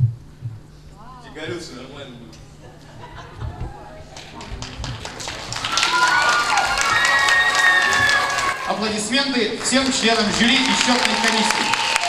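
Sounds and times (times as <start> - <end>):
audience applauding: 4.1 - 12.0.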